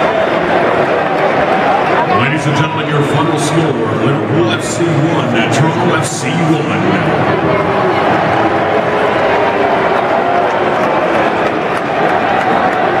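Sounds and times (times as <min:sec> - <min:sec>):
stadium crowd din: 0:00.0 - 0:13.0.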